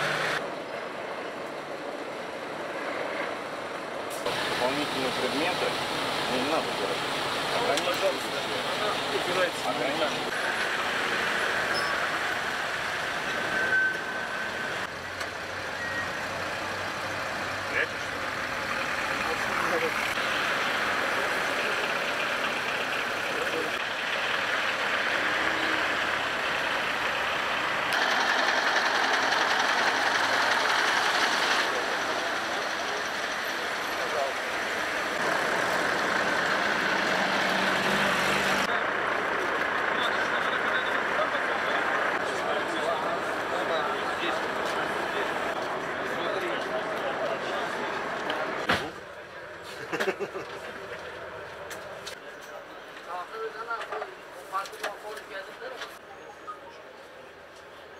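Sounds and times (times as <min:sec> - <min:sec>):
traffic and vehicle engines: 0:00.0 - 0:57.9.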